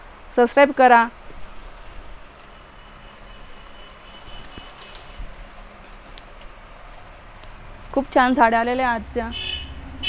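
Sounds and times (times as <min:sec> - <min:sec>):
silk fabric rustling: 0:01.2 - 0:02.4.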